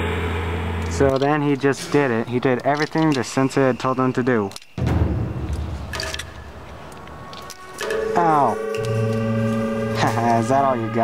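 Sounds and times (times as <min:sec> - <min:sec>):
low rumbling noise: 0:00.0 - 0:03.8, 0:04.8 - 0:11.0.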